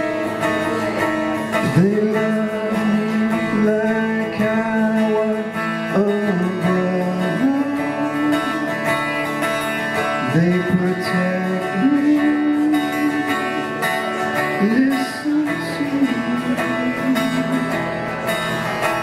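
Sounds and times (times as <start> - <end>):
acoustic guitar strumming: 0.0 - 19.0
man singing long notes: 1.5 - 8.8, 10.2 - 17.8.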